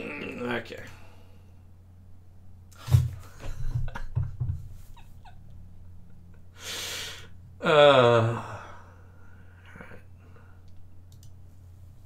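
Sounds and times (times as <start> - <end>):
steady low hum: 0.0 - 12.0
faint click: 10.6 - 11.4.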